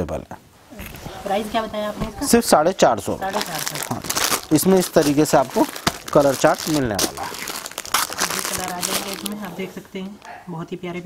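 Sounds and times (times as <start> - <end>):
person talking: 1.1 - 7.6, 8.2 - 10.2
plastic packaging crinkling: 3.2 - 9.7.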